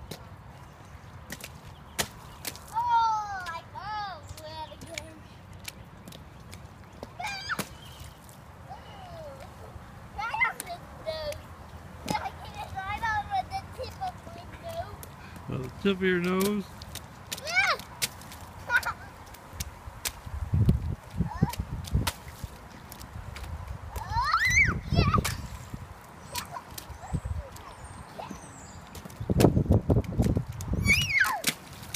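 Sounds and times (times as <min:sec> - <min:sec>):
rain boots splashing in puddle: 0:00.1 - 0:31.9
child squealing: 0:07.2 - 0:07.6, 0:24.0 - 0:25.2, 0:30.8 - 0:31.4.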